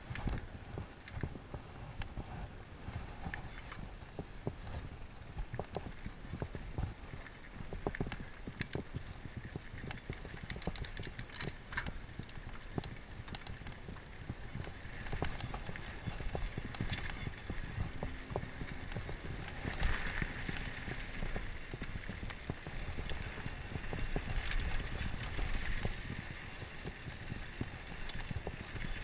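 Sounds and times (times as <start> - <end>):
wind rumble on microphone: 0.0 - 29.0
bike chain and frame clattering: 7.2 - 29.0.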